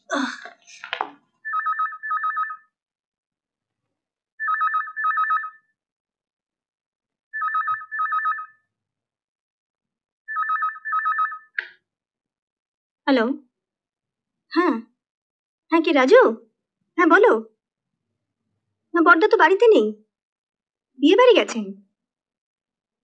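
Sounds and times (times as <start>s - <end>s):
telephone ringing: 1.4s - 2.8s, 4.4s - 5.8s, 7.3s - 8.7s, 10.3s - 11.6s.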